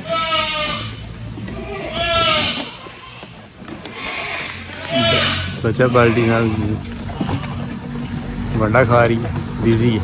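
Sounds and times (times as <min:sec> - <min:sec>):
goats bleating: 0:00.0 - 0:07.8.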